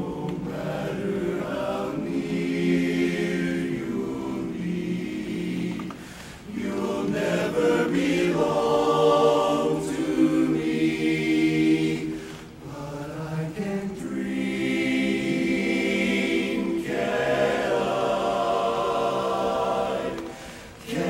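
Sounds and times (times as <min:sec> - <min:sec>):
men's chorus singing a cappella: 0:00.0 - 0:21.0.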